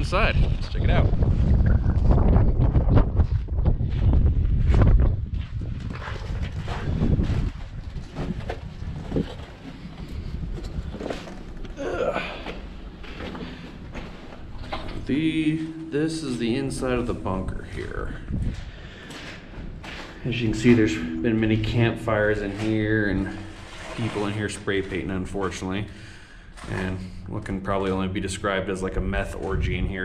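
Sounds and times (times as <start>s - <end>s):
wind buffeting microphone: 0.0s - 11.1s, 13.7s - 23.9s.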